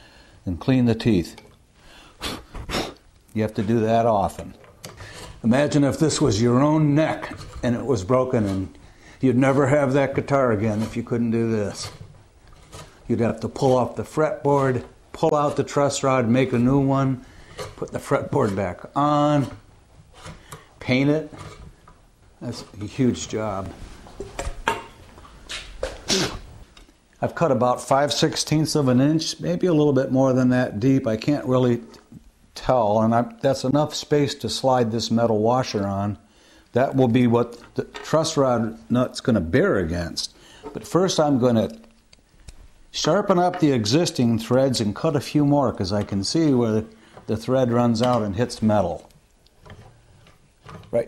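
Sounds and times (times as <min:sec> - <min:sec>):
man speaking: 0:00.4 - 0:01.4, 0:03.3 - 0:04.6, 0:05.4 - 0:12.0, 0:13.1 - 0:17.2, 0:17.8 - 0:19.6, 0:20.8 - 0:21.5, 0:22.4 - 0:23.8, 0:27.2 - 0:32.0, 0:32.6 - 0:41.9, 0:42.9 - 0:49.1
loud puff of breath: 0:01.8 - 0:03.0.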